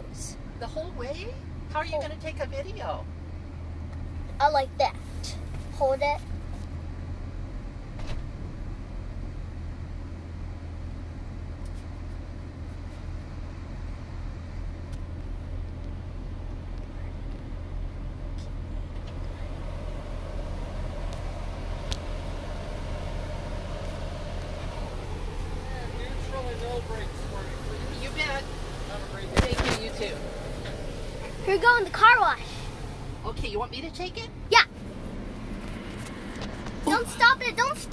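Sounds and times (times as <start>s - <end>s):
car engine idling hum: 0.0s - 37.9s.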